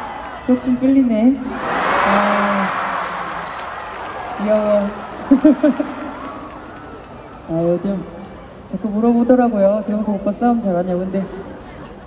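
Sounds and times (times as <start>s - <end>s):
concert crowd cheering and screaming: 0.0s - 7.6s.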